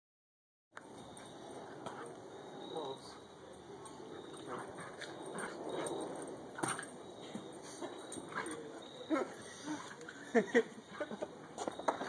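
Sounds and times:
dogs play-wrestling: 0.9 - 12.0.

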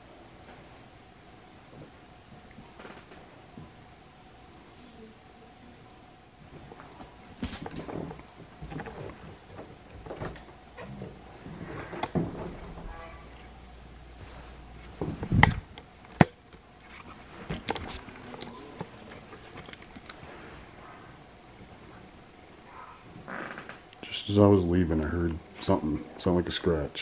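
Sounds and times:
footsteps in a house: 6.4 - 13.5.

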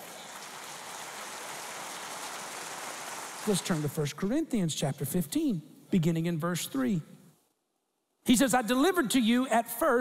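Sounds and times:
crowd applauding: 0.0 - 4.0.

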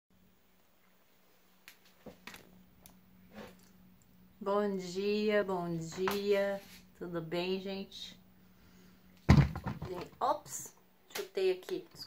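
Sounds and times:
steady low hum: 0.2 - 12.0.

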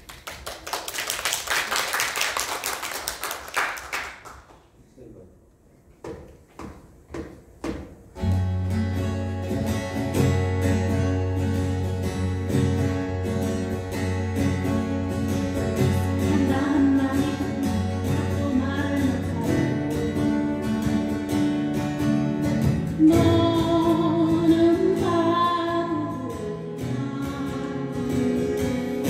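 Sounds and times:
sharp taps: 6.0 - 8.1
acoustic guitars strumming: 6.6 - 29.0.

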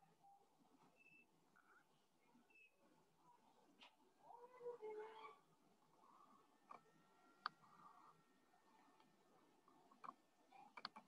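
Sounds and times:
faint animal call: 4.2 - 5.5.

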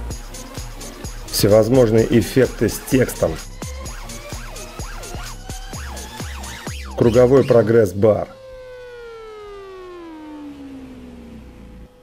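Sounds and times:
synthesized tone gliding down: 4.0 - 12.0.

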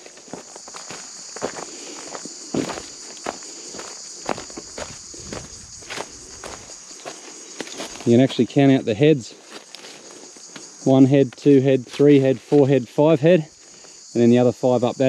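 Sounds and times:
footsteps crunching on dry leaves: 0.0 - 8.5, 9.2 - 12.6
high-pitched insect drone: 0.0 - 15.0.

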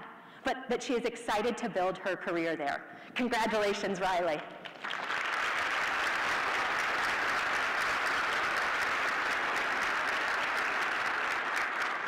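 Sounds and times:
audience applauding: 4.6 - 12.0.

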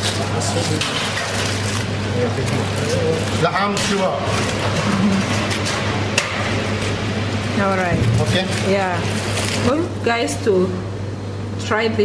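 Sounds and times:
kitchen clatter: 0.0 - 6.9.

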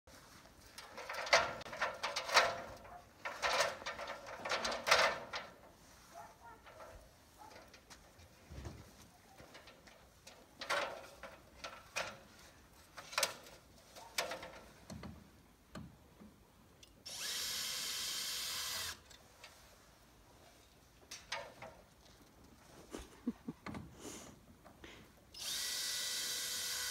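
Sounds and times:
power drill running: 17.1 - 19.0, 25.4 - 26.9.

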